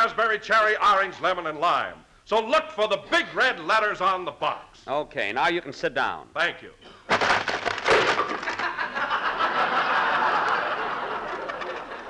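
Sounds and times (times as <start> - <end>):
wooden chair splintering crash: 7.1 - 8.8
studio audience laughing: 8.3 - 12.0.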